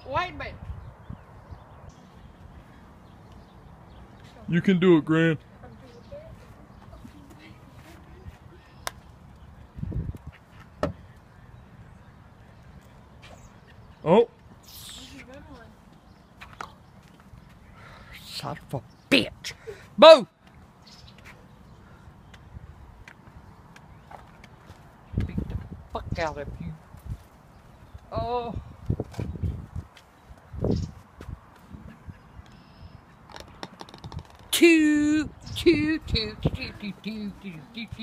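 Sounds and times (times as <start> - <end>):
ball dropping into cup: 33.3 - 34.5
putter tapping golf ball: 33.3 - 34.5.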